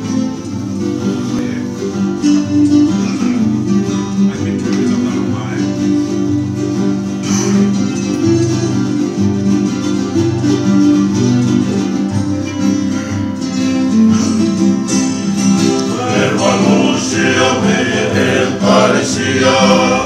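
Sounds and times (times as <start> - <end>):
acoustic guitars strumming: 0.0 - 20.0
ukulele strumming: 0.0 - 20.0
men singing in harmony: 15.8 - 20.0.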